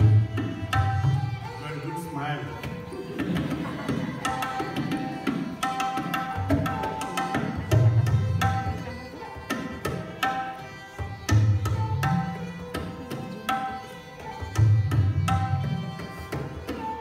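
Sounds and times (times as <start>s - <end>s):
bowed sarangi melody: 0.0s - 17.0s
tabla drumming: 0.0s - 17.0s.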